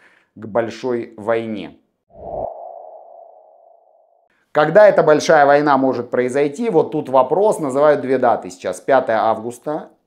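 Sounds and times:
upward whoosh: 2.1s - 4.2s
sonar-like electronic tone: 2.2s - 4.3s.

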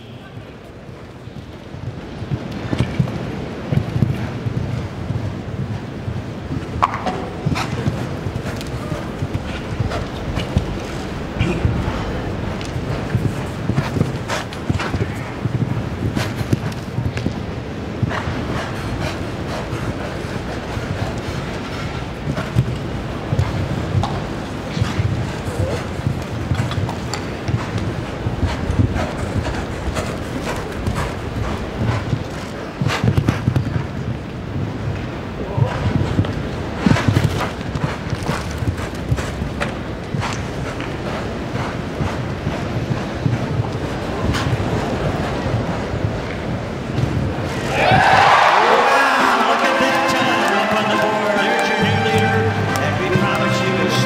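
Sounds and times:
background murmur: 0.0s - 54.0s
horse hoofbeats on soft ground: 0.0s - 54.0s.

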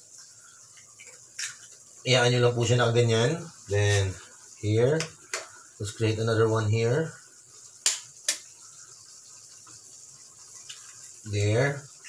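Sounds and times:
egg being opened into pan: 0.8s - 1.8s.

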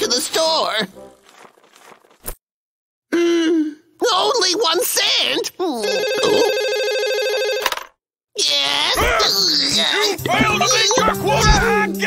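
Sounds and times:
telephone ringing: 5.8s - 8.0s.

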